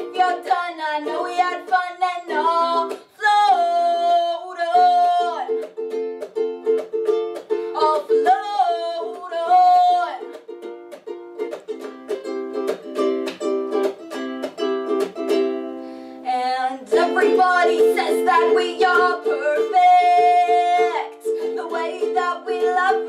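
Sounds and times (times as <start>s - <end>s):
woman singing: 0.0s - 5.6s, 7.7s - 10.4s, 16.2s - 23.0s
ukulele strumming: 0.0s - 23.0s.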